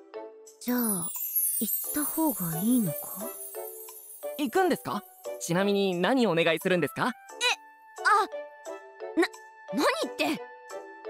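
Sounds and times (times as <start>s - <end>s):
soft tinkly background music: 0.0s - 11.0s.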